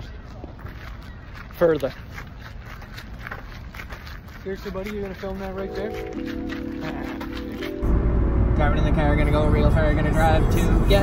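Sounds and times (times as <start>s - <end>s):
faint footstep clicks: 0.0s - 7.8s.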